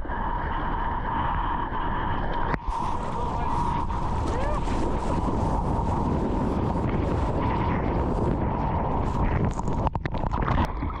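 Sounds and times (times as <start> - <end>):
wind noise on microphone: 0.0 - 11.0
ocean water sloshing: 2.6 - 11.0.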